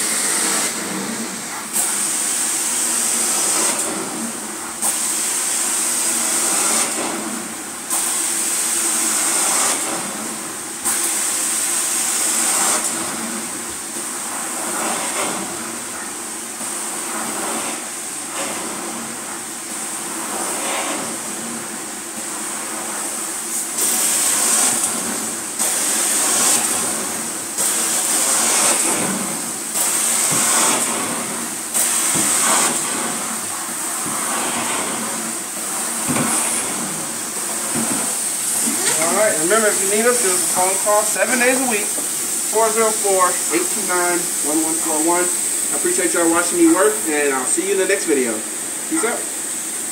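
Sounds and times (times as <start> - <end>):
vacuum suction hiss on wet carpet: 0.0 - 49.9.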